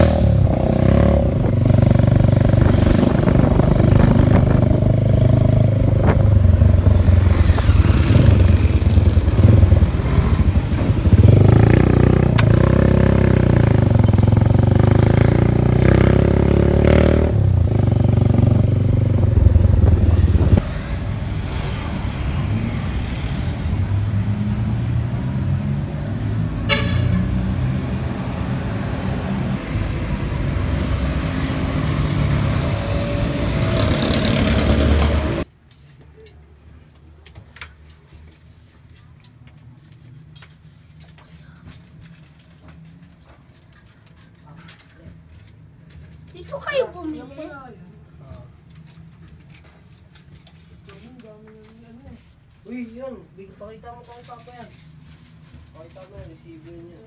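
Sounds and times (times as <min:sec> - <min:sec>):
street traffic noise: 0:00.0 - 0:57.0
motorcycle engine running: 0:00.6 - 0:20.6.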